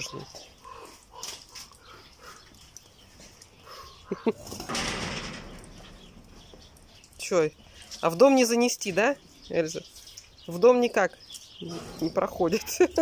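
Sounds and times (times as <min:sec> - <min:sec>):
animal calls: 0:00.0 - 0:07.8.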